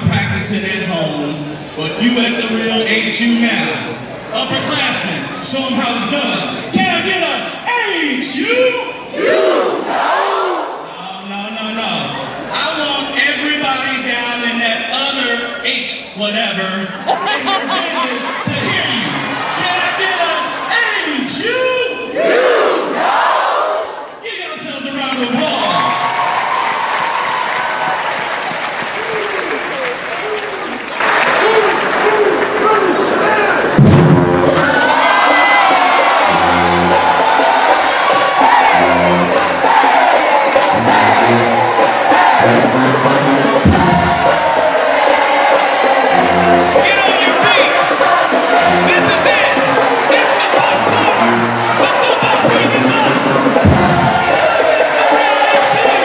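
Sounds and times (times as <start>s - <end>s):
crowd chanting and shouting: 0.0s - 11.3s, 15.3s - 25.8s, 26.4s - 56.0s
crowd cheering: 8.0s - 11.1s, 17.0s - 24.2s, 25.0s - 56.0s
marching band playing: 33.7s - 56.0s.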